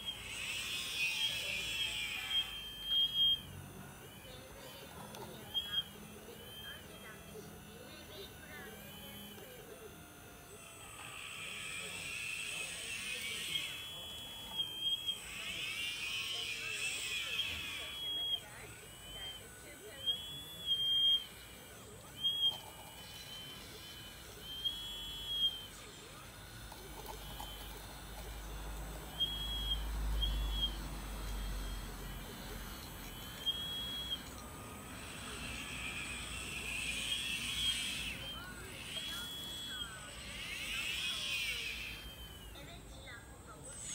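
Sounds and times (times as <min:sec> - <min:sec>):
electric motors whining: 0:00.0 - 0:43.9.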